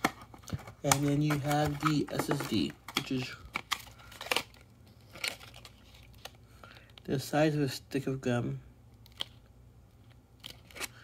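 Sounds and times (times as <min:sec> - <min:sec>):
plastic tray crackling and clicking: 0:00.0 - 0:04.6.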